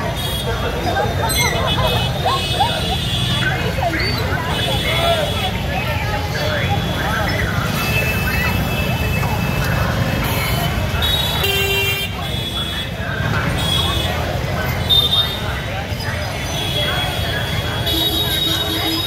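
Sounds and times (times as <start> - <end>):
crowd voices talking: 0.0 - 19.0
motorbike and scooter traffic: 0.0 - 19.0
vehicle horns tooting: 6.5 - 15.6, 16.5 - 19.0.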